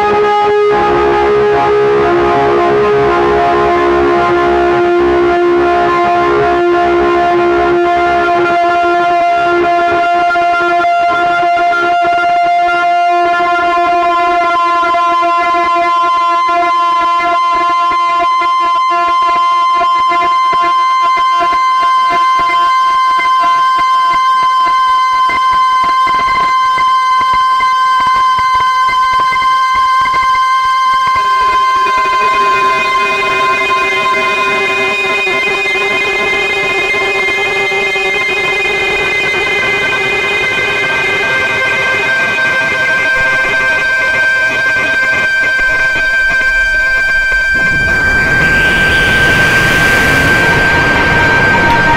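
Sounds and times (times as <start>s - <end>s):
synthesizer drone: 43.1s - 51.9s.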